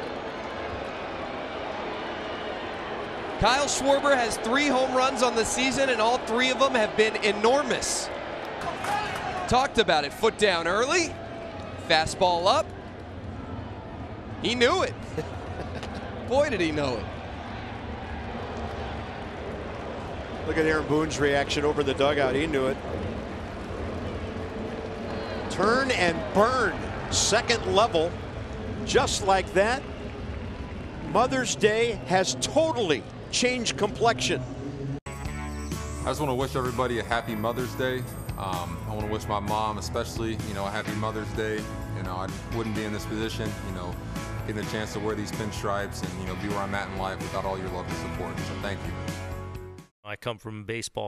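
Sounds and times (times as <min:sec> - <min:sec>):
ballpark crowd noise: 0:00.0 - 0:34.9.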